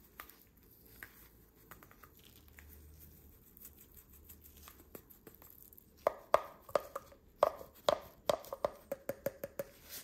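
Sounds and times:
plastic bottle tapping glass jar: 6.1 - 9.8.

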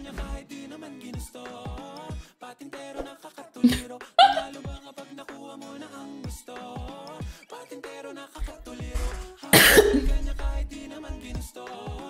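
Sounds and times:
upbeat pop music: 0.0 - 12.0
loud sharp cough: 9.6 - 10.1.

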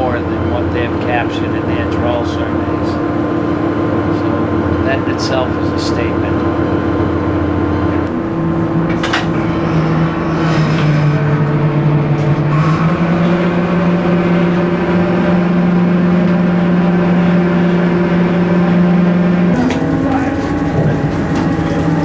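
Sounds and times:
boat engine and machinery drone: 0.0 - 22.0.

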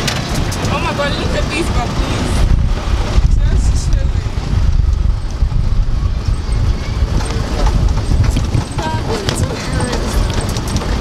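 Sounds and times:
vehicle rumble: 0.0 - 11.0
wind buffeting microphone: 0.0 - 11.0
faint voices: 5.2 - 11.0.

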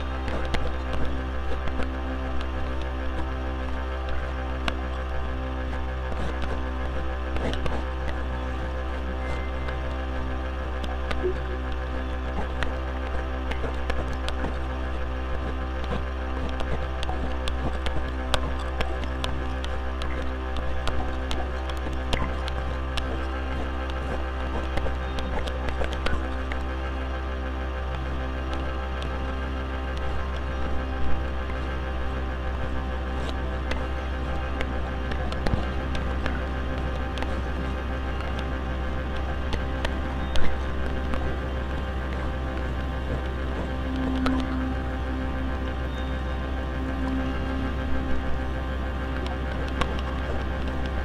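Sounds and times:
electronic drone music: 0.0 - 51.0
razor scraping stubble clicks: 4.0 - 26.8, 32.7 - 45.1.

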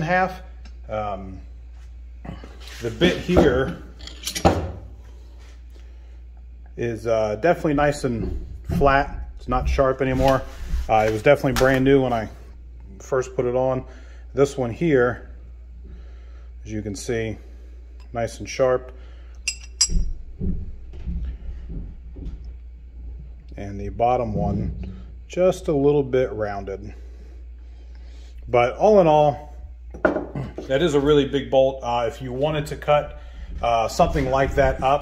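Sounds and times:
handling thumps of steel bits: 3.4 - 4.7, 19.4 - 20.2.

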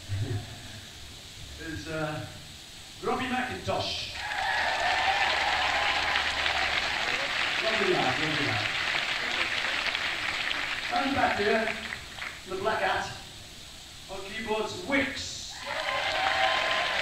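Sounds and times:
audience applauding and cheering: 4.2 - 12.5, 15.5 - 17.0.

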